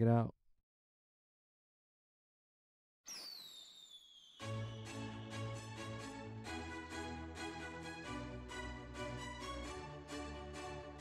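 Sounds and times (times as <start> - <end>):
firework whistles over hiss: 3.1 - 5.0.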